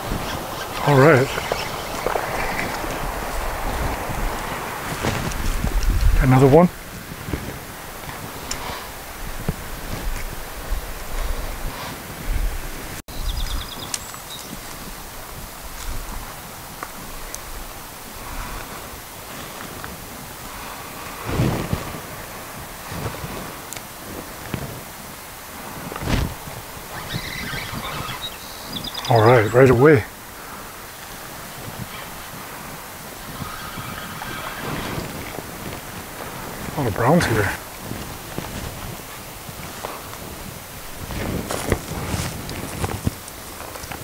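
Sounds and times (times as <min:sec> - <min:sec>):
rustling: 0:00.0 - 0:13.0, 0:13.8 - 0:28.8, 0:29.6 - 0:44.0
wind buffeting microphone: 0:00.0 - 0:44.0.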